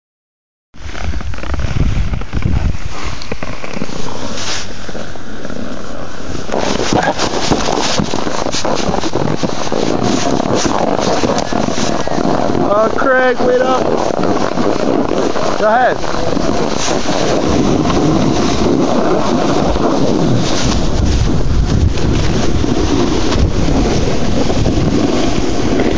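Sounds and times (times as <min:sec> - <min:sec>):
small clicks and crackles: 0:00.8 - 0:25.9
wind buffeting microphone: 0:00.8 - 0:25.9.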